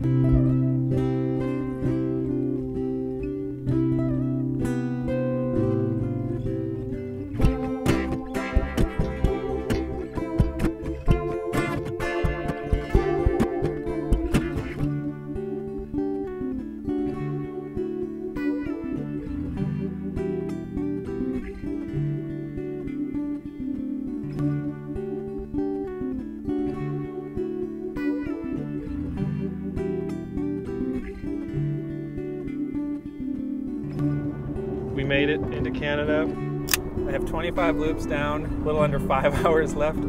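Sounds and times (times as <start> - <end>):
guitar loop playing: 0.0 - 40.0.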